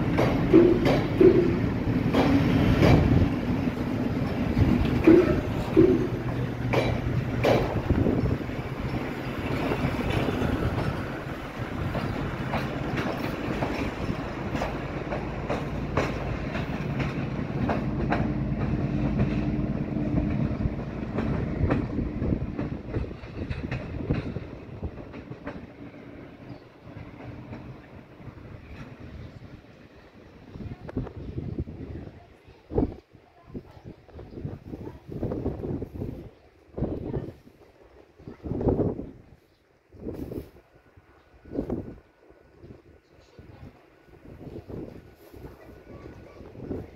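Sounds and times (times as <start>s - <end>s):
train wheels clicking over rail joints: 0.0s - 29.7s.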